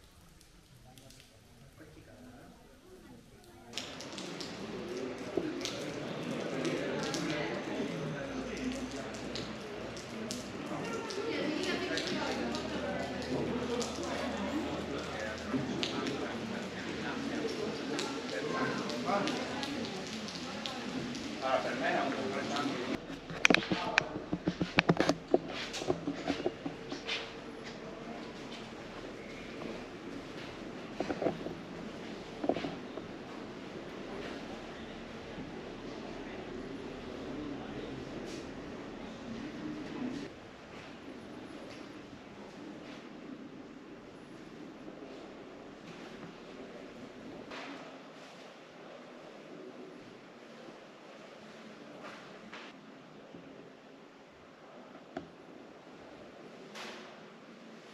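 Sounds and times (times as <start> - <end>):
people talking indistinctly: 0.9 - 35.2
sharp clicks and knocks: 23.0 - 27.0.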